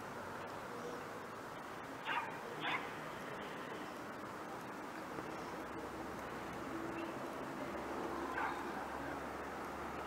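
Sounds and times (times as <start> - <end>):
steady background noise: 0.0 - 10.0
dog barking: 2.0 - 2.9, 8.3 - 8.7.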